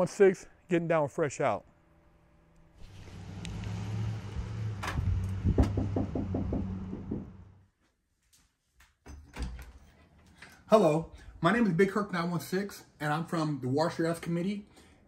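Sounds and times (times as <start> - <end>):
knocks on wooden door: 5.5 - 7.4.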